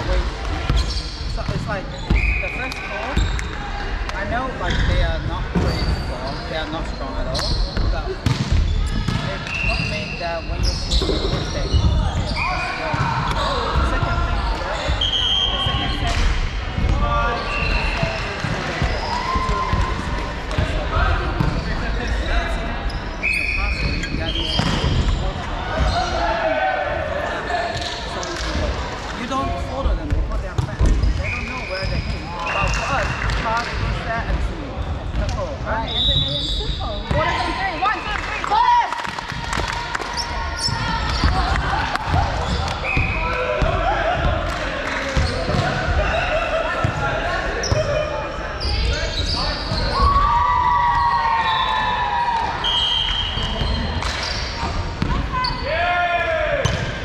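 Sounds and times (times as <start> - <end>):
echoing voices and chatter: 0.0 - 57.0.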